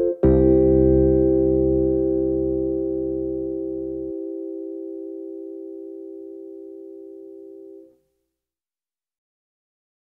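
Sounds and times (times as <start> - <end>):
electronic keyboard chord: 0.0 - 7.9.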